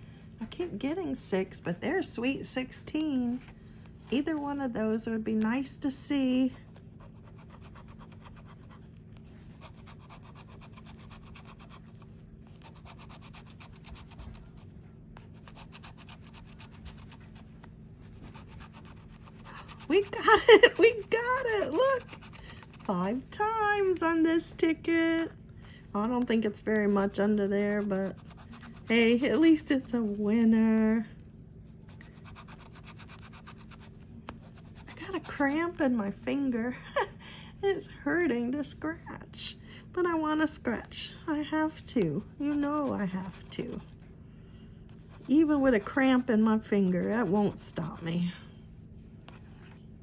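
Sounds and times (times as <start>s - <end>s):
tool scratching lottery ticket: 7.0s - 23.2s, 27.4s - 30.0s, 31.9s - 35.6s.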